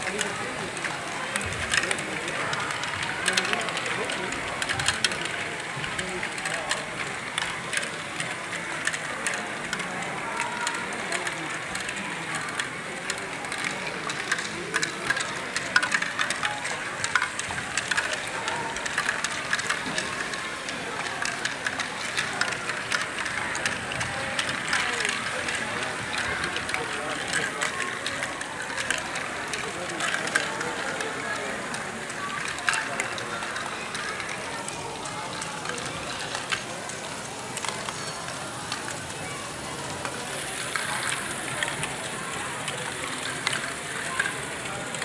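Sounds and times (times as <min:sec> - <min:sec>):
indistinct voices: 0:00.0 - 0:45.0
plastic balls clicking and rattling: 0:00.0 - 0:45.0.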